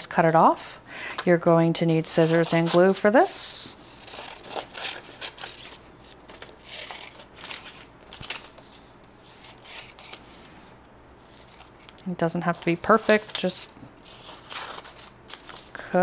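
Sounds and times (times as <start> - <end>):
scissors cutting paper: 2.2 - 10.5, 11.2 - 15.8
paper rustling: 3.8 - 16.0.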